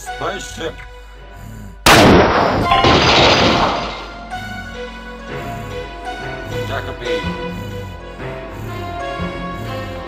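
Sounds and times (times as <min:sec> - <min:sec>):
background music: 0:00.0 - 0:10.0
space gun shot: 0:01.9 - 0:04.1.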